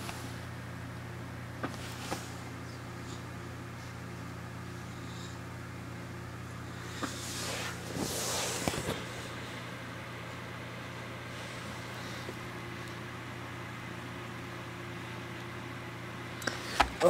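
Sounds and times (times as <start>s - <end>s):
electric fan motor hum: 0.0s - 17.0s.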